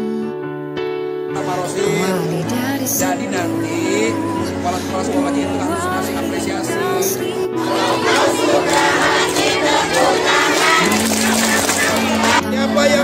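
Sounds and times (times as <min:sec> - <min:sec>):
background music: 0:00.0 - 0:13.0
crowd calling out: 0:07.6 - 0:12.4.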